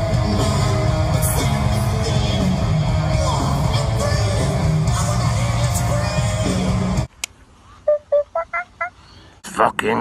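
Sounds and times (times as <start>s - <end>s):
live rock band playing: 0.0s - 7.1s
short electronic beeps: 7.9s - 9.0s
man talking: 9.4s - 10.0s.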